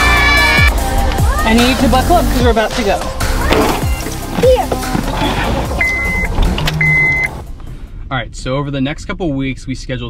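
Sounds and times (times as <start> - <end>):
background noise: 1.4 - 10.0
car warning chime beeping: 3.8 - 4.6, 5.2 - 7.4.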